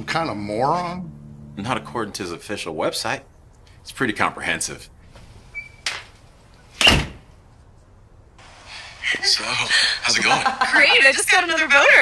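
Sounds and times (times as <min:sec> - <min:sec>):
door squeak: 0:05.5 - 0:06.1, 0:06.8 - 0:07.2
door slamming shut: 0:06.8 - 0:07.3.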